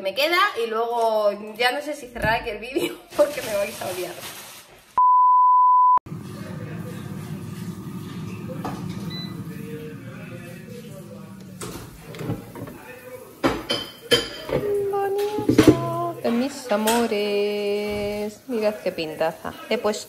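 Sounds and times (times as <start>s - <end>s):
steady beep tone: 5.0s - 6.0s
air fryer fan humming: 6.1s - 18.2s.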